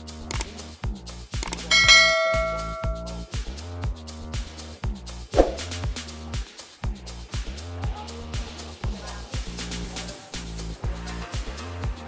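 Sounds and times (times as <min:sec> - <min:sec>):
electronic music with steady beat: 0:00.0 - 0:12.0
notification bell ding: 0:01.7 - 0:03.3.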